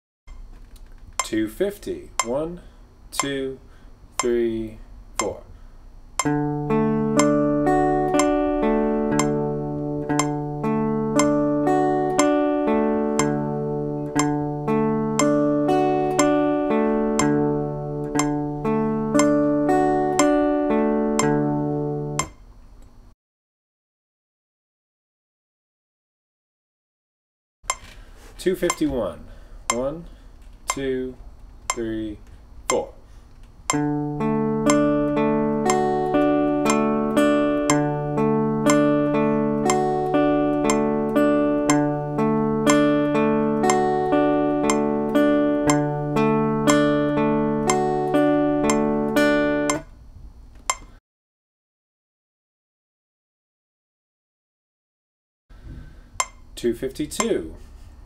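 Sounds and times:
guitar picking arpeggios: 0:06.2 - 0:22.3, 0:33.7 - 0:49.9.

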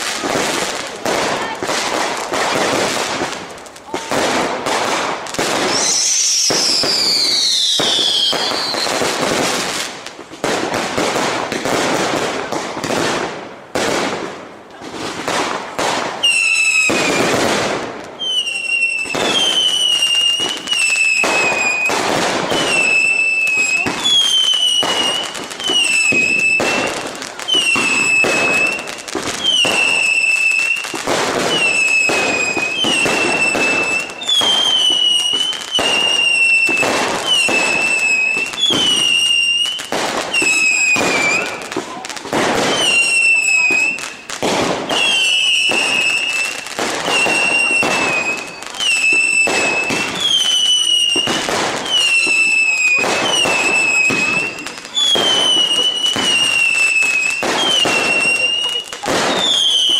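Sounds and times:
firework whistle: 0:00.0 - 0:09.8, 0:15.0 - 0:59.9
firework cracks: 0:00.0 - 0:59.9.

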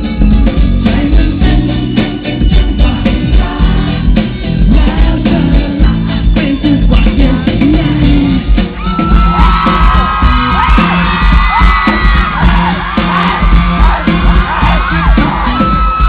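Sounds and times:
live band music: 0:00.0 - 0:16.0
man singing into a microphone: 0:00.8 - 0:04.0, 0:04.6 - 0:08.6
audience screaming and whooping: 0:08.3 - 0:16.0.

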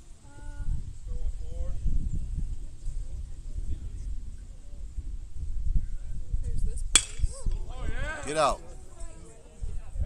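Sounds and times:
bat cracking a ball: 0:06.9 - 0:07.6.

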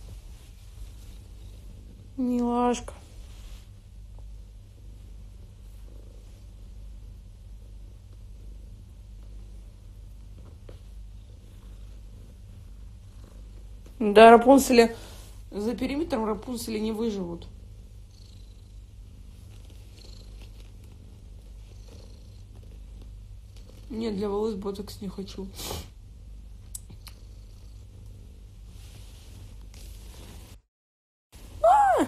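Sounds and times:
cat purring: 0:00.0 - 0:30.6.

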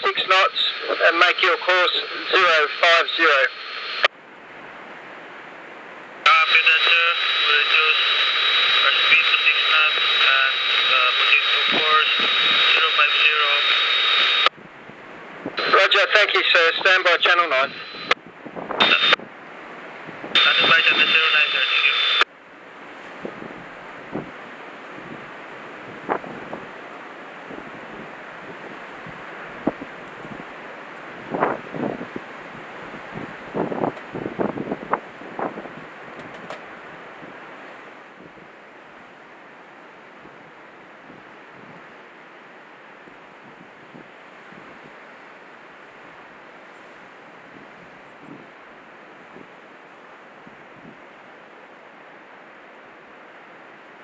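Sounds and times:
surf from rough sea: 0:00.0 - 0:54.0
wind buffeting microphone: 0:14.5 - 0:15.7, 0:18.2 - 0:21.2, 0:23.1 - 0:37.5, 0:40.2 - 0:41.9, 0:43.1 - 0:45.0, 0:47.3 - 0:48.6, 0:50.4 - 0:51.0.

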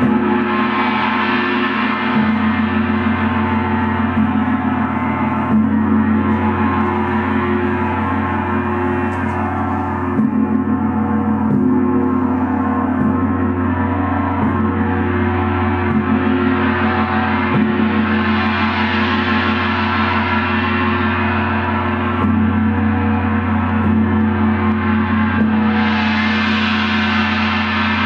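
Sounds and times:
large gong struck with mallets: 0:00.0 - 0:28.0.

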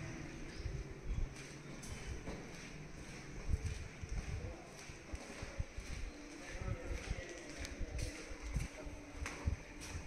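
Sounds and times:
footsteps on hard floor: 0:01.4 - 0:06.0.

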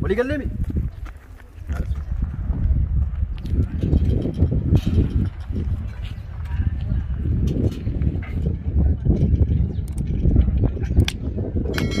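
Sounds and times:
wind rumbling on microphone: 0:00.0 - 0:12.0
footsteps on gravel path: 0:00.3 - 0:08.6.

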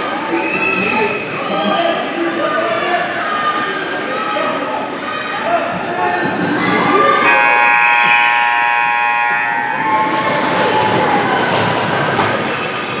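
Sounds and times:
scoreboard horn long blast: 0:07.2 - 0:11.3.

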